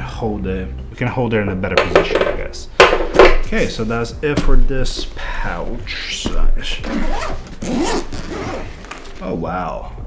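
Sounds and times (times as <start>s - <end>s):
zipper being pulled open: 6.8s - 9.1s.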